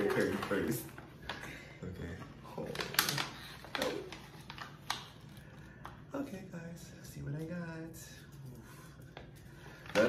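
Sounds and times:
plastic bag crinkling: 0:02.5 - 0:05.9.

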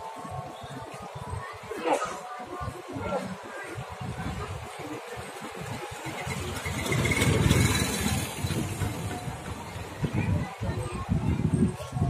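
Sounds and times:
vehicle engine rumbling: 0:03.9 - 0:11.7.

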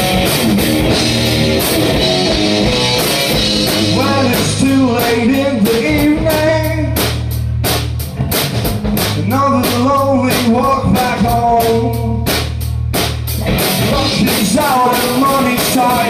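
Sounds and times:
drum kit beat: 0:00.0 - 0:16.0
electric bass: 0:00.0 - 0:16.0
electric guitar: 0:00.0 - 0:16.0
man singing into microphone: 0:03.9 - 0:07.0, 0:09.2 - 0:12.3, 0:13.9 - 0:16.0.

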